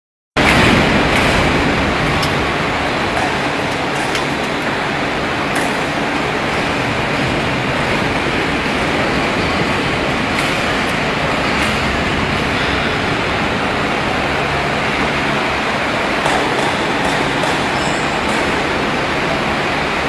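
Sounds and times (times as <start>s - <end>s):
machine running loudly: 0.4s - 20.0s.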